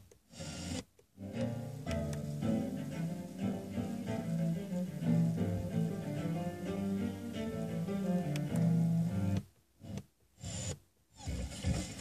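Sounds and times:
radio playing string music: 0.3s - 10.2s.

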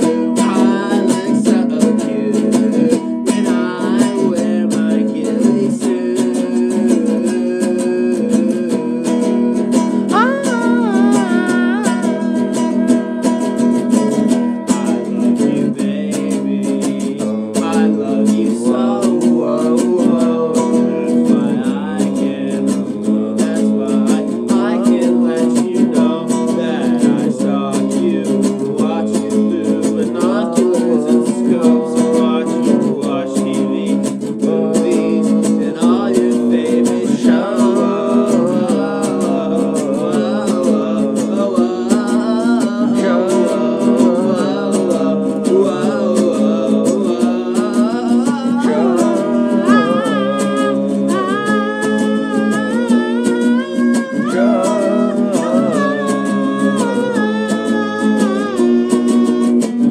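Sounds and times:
acoustic guitar strumming: 0.0s - 59.9s
wavering melody line: 10.1s - 14.1s, 48.6s - 59.7s.

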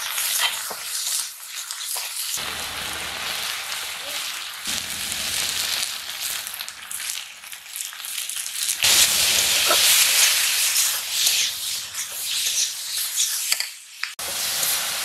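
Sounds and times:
vegetables sizzling in a pan: 0.0s - 15.0s.

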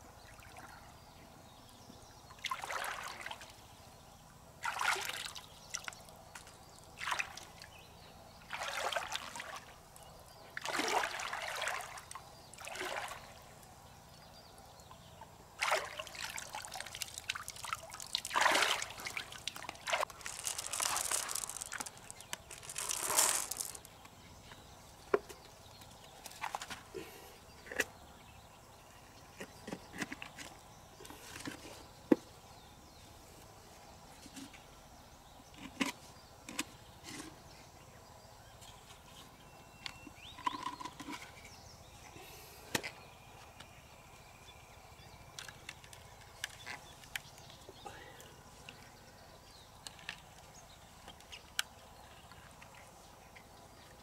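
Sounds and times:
water splashing and sloshing: 2.4s - 3.6s, 4.6s - 7.7s, 8.5s - 9.8s, 10.6s - 13.6s, 15.6s - 23.9s.

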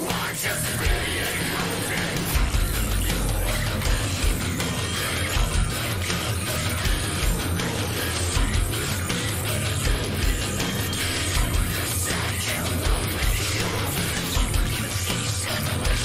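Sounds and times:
extreme metal song: 0.0s - 16.0s
drum hits: 0.8s - 6.2s.

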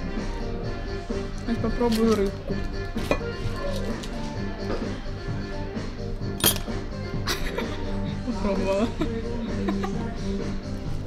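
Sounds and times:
background music: 0.0s - 11.0s
fork clinking against plate: 6.4s - 6.8s.

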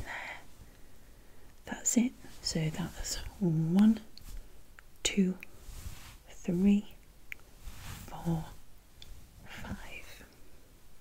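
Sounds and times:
woman whispering: 0.0s - 0.5s, 1.6s - 4.2s, 5.0s - 5.6s, 6.2s - 7.0s, 8.0s - 8.6s, 9.4s - 10.4s.

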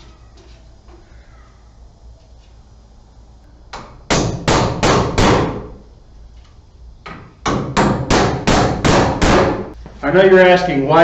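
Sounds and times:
hammer striking nails into wood: 3.7s - 5.7s, 7.1s - 9.7s.

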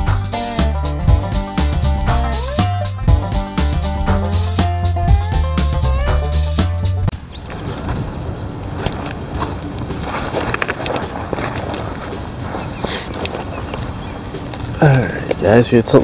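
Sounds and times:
wind rumbling on microphone: 7.0s - 16.0s
footsteps on rock: 7.6s - 15.4s.

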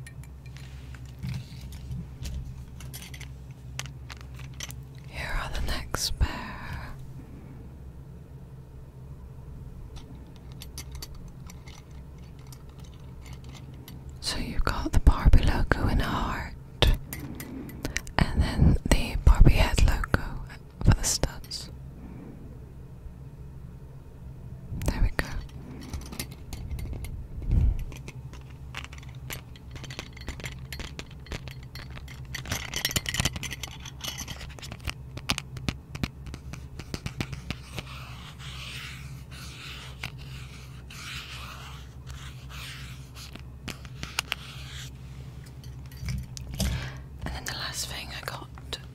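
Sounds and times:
fingers rustling cardboard card: 27.9s - 45.0s.

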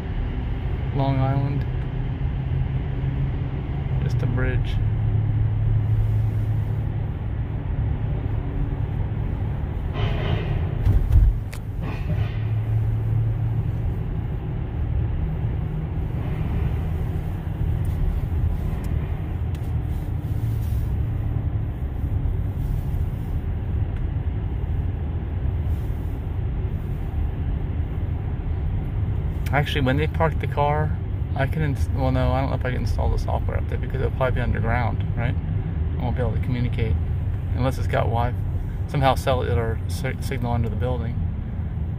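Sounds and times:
car road rumble: 0.0s - 41.9s
loud thump: 9.9s - 12.6s.

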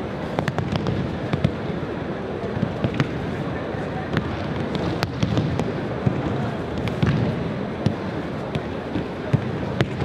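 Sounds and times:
low hall rumble: 0.0s - 10.0s.

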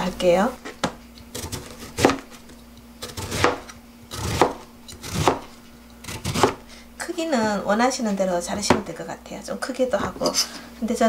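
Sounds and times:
knife slicing radish on board: 0.8s - 6.6s.

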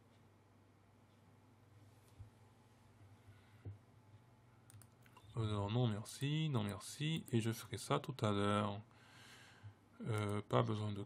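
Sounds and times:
computer mouse click: 4.7s - 5.2s.

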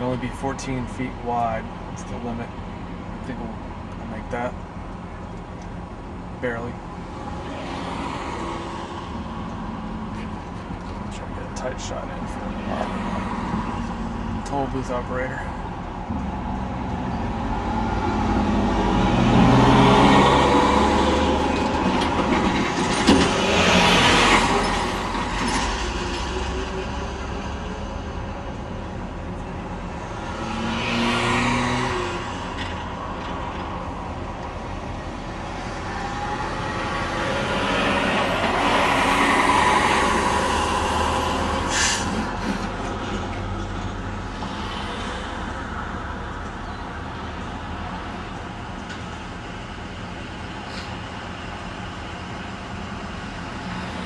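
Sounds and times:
heavy truck diesel engines: 0.0s - 54.0s
vehicles running nearby: 0.0s - 54.0s.

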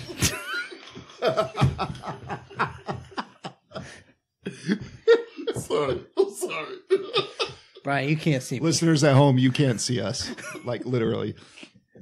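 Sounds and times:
men laughing: 0.0s - 7.8s, 9.5s - 11.7s.

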